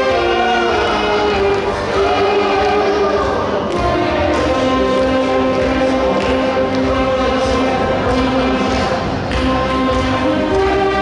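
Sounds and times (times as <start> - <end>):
saxophone ensemble playing: 0.0 - 11.0.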